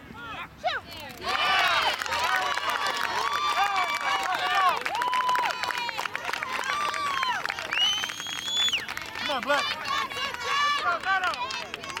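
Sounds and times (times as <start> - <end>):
people shouting and cheering: 0.2 - 8.2, 9.2 - 12.0.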